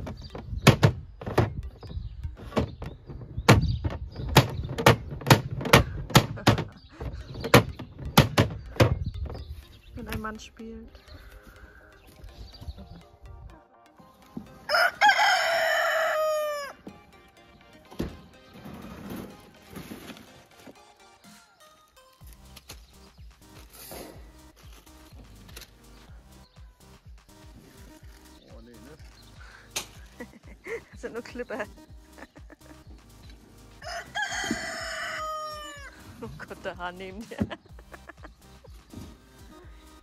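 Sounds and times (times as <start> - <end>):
rooster crowing: 14.7 - 16.8, 33.8 - 35.9.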